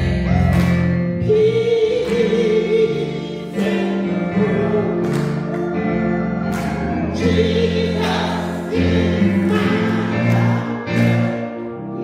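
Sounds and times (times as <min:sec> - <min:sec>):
choir singing gospel: 0:00.0 - 0:12.0.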